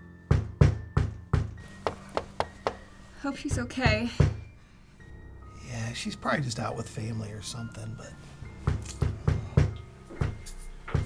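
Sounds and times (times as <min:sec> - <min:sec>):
fist knocking on door: 0:00.3 - 0:02.9, 0:04.1 - 0:04.5, 0:08.6 - 0:10.4.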